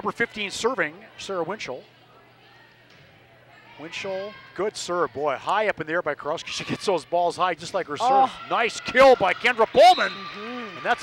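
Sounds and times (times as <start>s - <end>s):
gymnasium background hum: 0.0s - 11.0s.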